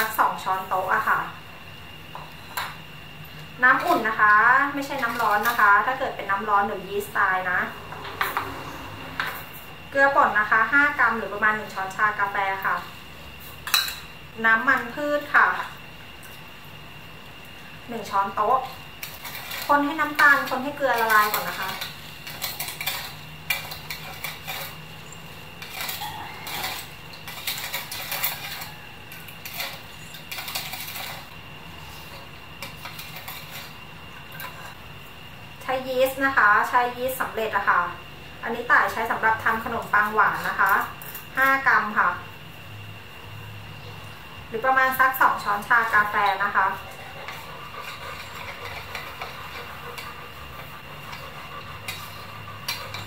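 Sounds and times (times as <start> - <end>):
metal spoon stirring water: 18.4 - 31.3.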